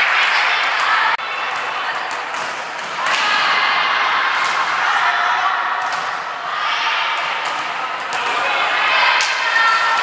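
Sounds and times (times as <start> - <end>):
voices echoing in a gym: 0.0 - 10.0.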